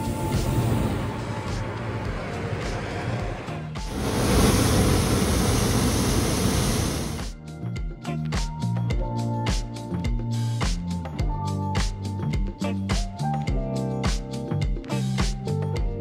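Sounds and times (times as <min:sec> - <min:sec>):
music with a beat: 0:00.0 - 0:04.0, 0:07.2 - 0:16.0
propane burner rushing: 0:00.0 - 0:07.3.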